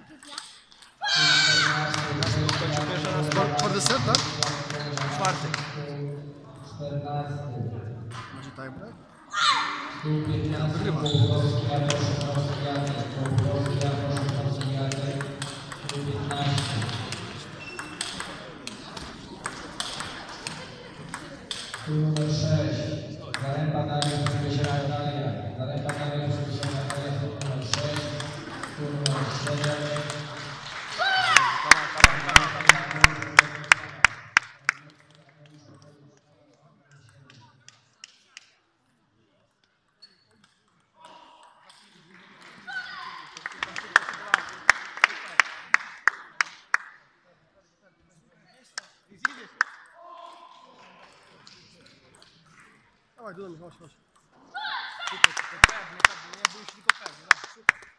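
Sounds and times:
voices in a hall: 0.0 - 57.9
table tennis ball clicking: 13.6 - 22.3.

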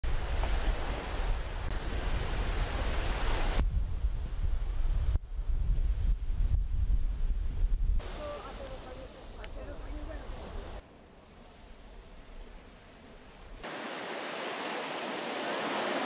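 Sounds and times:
waves washing onto beach: 0.0 - 3.6, 8.0 - 10.8, 13.6 - 16.0
wind rumbling on microphone: 0.0 - 10.8.

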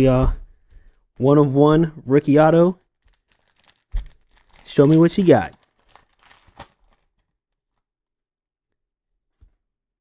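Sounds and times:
foil pack wrapper rustle: 2.6 - 7.4.

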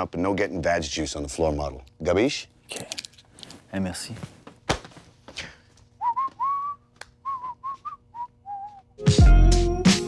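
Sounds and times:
person whistling a tune: 6.0 - 9.3.

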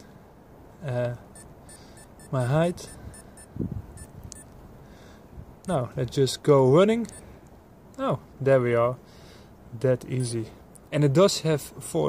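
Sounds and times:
short watch key beeps: 1.4 - 4.5.

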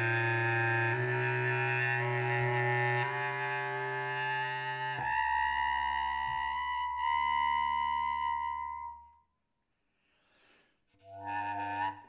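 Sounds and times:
bass clarinet low note: 0.0 - 9.2, 11.0 - 12.0.

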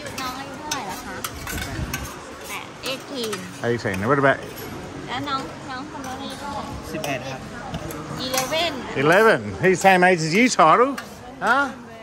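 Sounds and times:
metal spoon scraping a tray: 0.0 - 4.9, 6.0 - 11.8.

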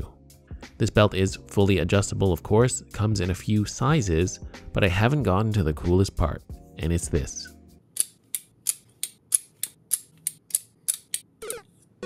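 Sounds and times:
magnetic buckle clicking: 8.0 - 11.6.

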